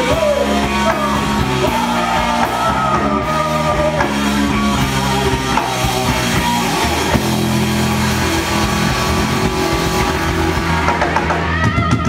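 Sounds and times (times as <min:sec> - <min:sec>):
distorted electric guitar chord: 0:00.0 - 0:11.5
live rock band: 0:00.0 - 0:12.0
dense wash of noise: 0:01.2 - 0:11.4.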